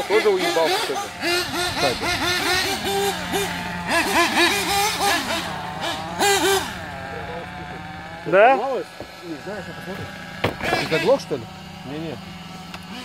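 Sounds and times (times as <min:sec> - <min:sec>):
small engine idling: 0:00.0 - 0:13.0
small engines revving: 0:00.0 - 0:13.0.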